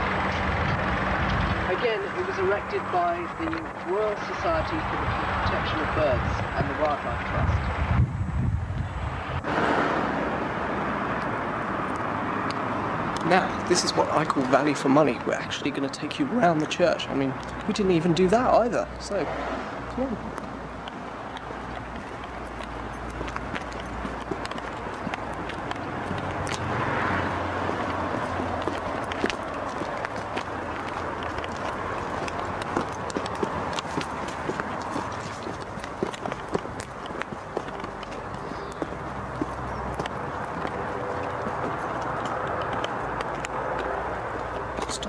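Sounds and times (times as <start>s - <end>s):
footsteps on paved path: 0.0s - 45.0s.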